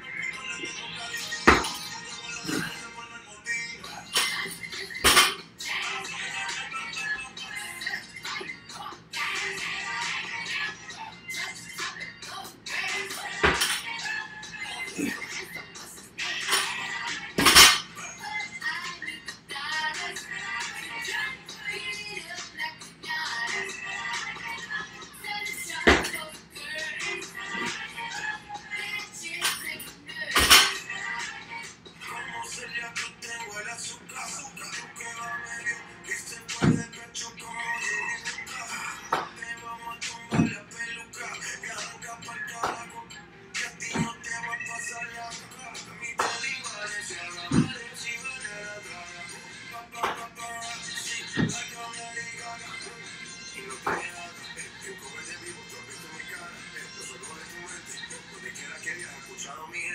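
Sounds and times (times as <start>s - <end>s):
pop song with singing: 0.0s - 59.9s.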